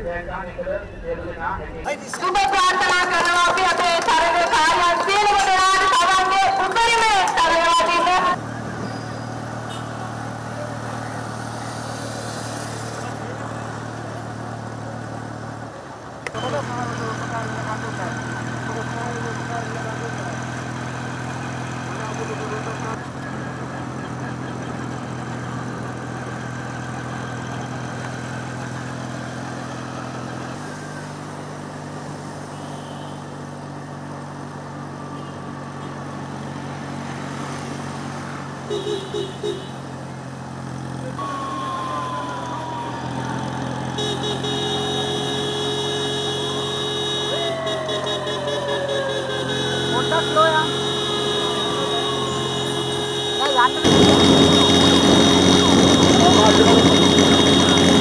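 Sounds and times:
vehicle engine running steadily: 2.6s - 58.0s.

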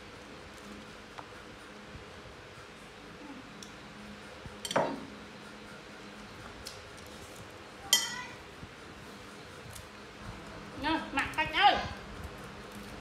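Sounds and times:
tableware clinking on table: 4.6s - 5.1s, 7.9s - 8.2s.

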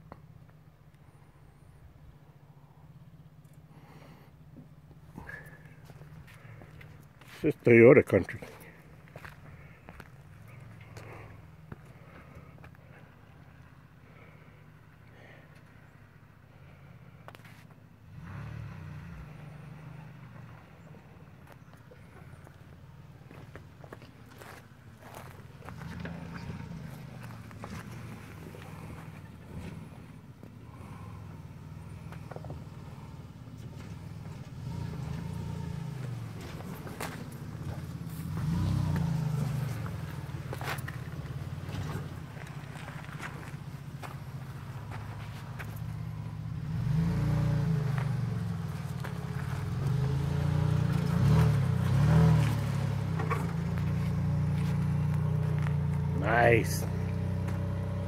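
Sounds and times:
truck engine rumble: 0.0s - 58.0s.

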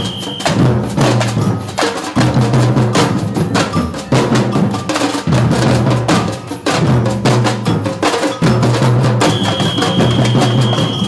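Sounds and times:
samba drumming: 0.0s - 11.0s.

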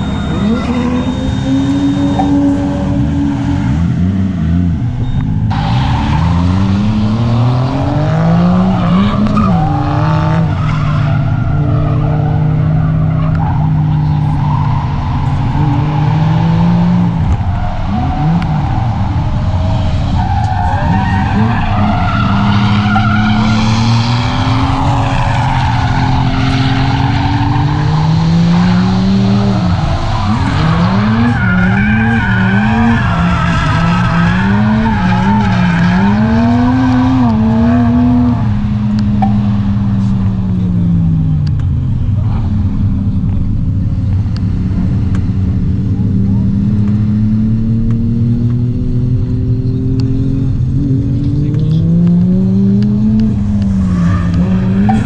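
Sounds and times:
car engine revving: 0.0s - 55.0s
tyres squealing: 17.4s - 37.3s.

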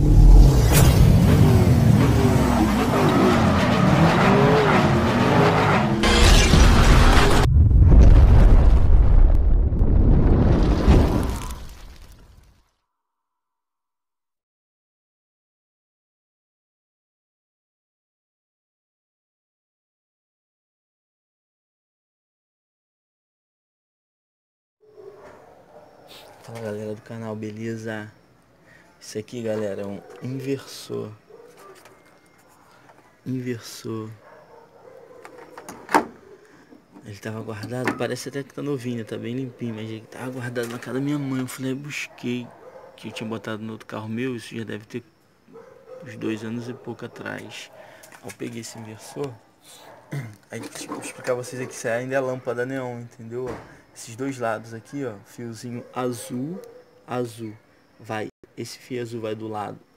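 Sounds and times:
deep explosion rumble: 6.0s - 11.5s.

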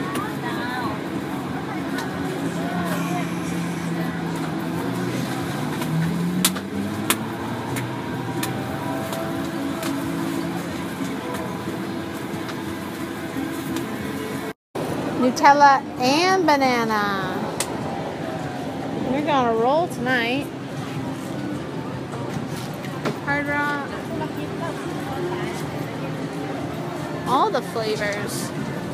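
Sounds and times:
indistinct background voices: 0.0s - 5.8s.

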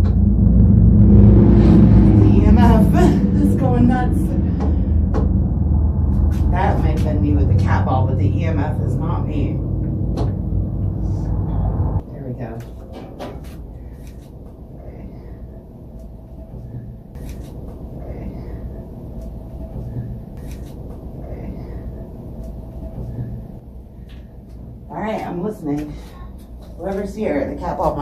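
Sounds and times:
loud low rumble: 0.0s - 27.0s.

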